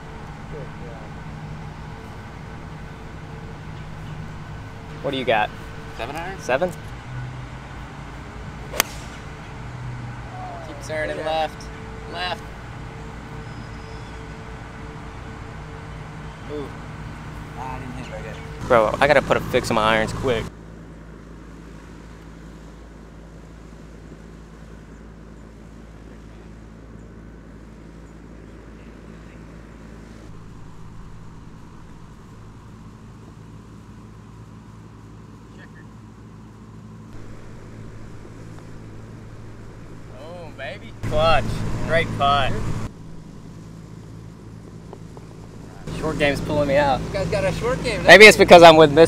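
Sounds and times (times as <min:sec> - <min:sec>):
low mechanical hum: 0:00.0 - 0:49.0.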